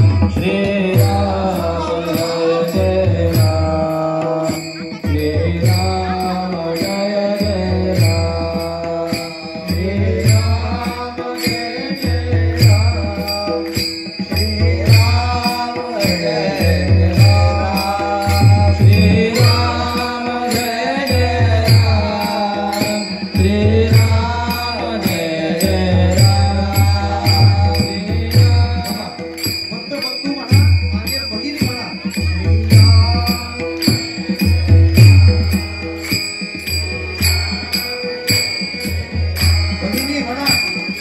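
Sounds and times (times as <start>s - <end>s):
barrel drum beats: 0.0s - 41.0s
harmonium: 0.0s - 41.0s
small hand cymbals: 0.0s - 41.0s
group singing in chorus: 14.6s - 29.4s, 32.9s - 41.0s.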